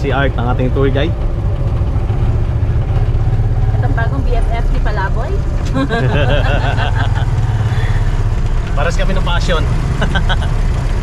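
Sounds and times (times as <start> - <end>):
motorcycle engine droning: 0.0 - 11.0
person's voice: 4.0 - 7.9.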